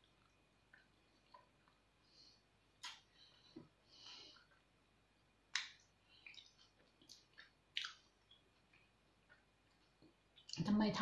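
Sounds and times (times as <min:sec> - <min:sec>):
soft breath: 0:02.0 - 0:04.6.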